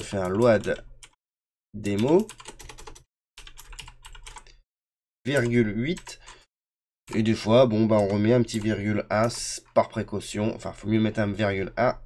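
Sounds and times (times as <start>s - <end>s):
computer keyboard keys clicking: 0.1s - 1.2s, 1.8s - 4.6s, 7.1s - 9.7s.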